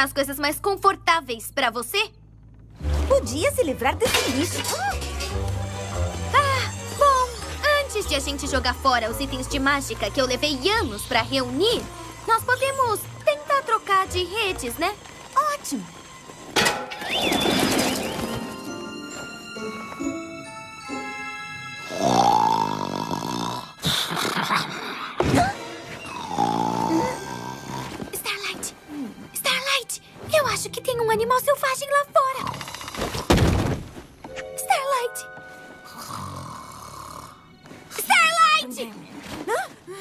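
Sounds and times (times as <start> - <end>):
squeaky whistle: 17.0 - 18.5
cartoon character snoring: 21.9 - 25.2, 26.0 - 28.1, 35.8 - 37.5.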